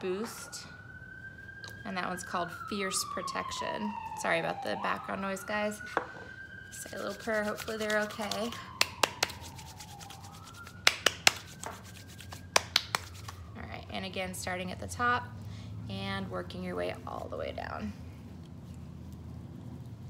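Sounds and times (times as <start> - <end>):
low background hum: 0.0 - 20.0
hands rubbing candle: 6.7 - 13.5.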